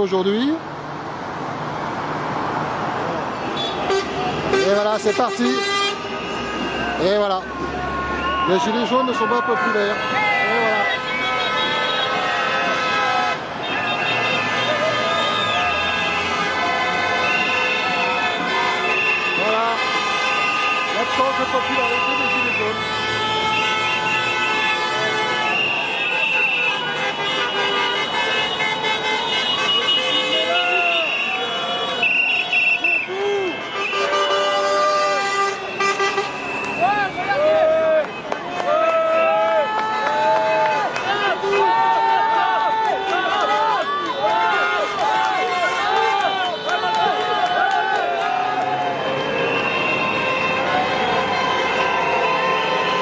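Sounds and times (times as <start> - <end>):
city traffic passing: 0.0 - 53.0
crowd voices: 3.0 - 53.0
car horns honking: 3.4 - 38.4, 48.9 - 53.0.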